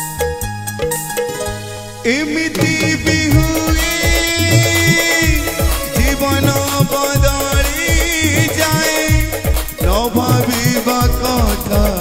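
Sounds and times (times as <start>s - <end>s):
electronic keyboard melody: 0.0s - 12.0s
drums beating: 2.1s - 12.0s.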